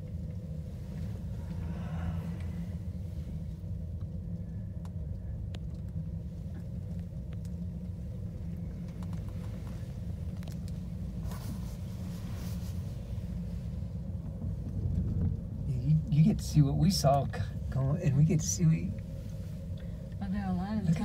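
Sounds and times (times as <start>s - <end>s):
gondola cabin rumble: 0.0s - 21.0s.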